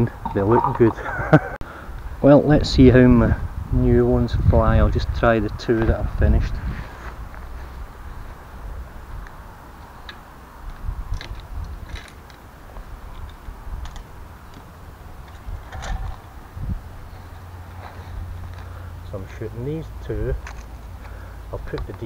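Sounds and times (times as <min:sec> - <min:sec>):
steady low rumble: 0:00.0 - 0:22.0
bow and arrows clicking: 0:10.0 - 0:16.4.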